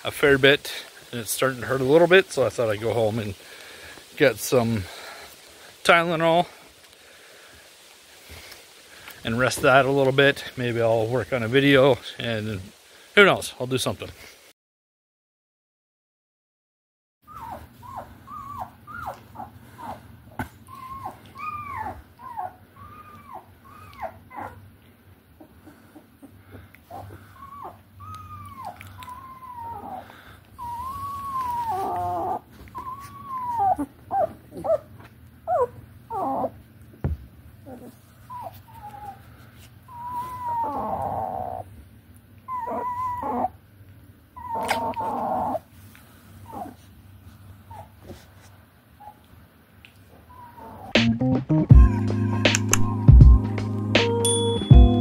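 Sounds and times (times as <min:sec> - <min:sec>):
puppies whimpering and squealing: 0:17.2 - 0:36.7, 0:37.6 - 0:41.7, 0:42.4 - 0:43.6, 0:44.3 - 0:45.7, 0:46.4 - 0:46.9, 0:47.6 - 0:48.0, 0:50.1 - 0:51.0, 0:51.7 - 0:53.5.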